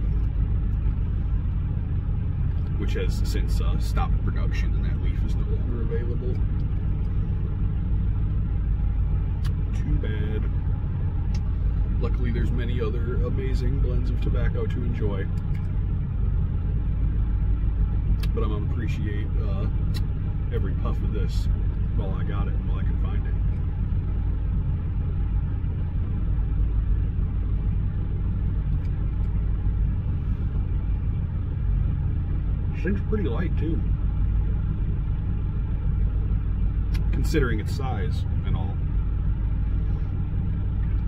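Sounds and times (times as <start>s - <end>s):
vehicle engine idling: 0.0s - 41.0s.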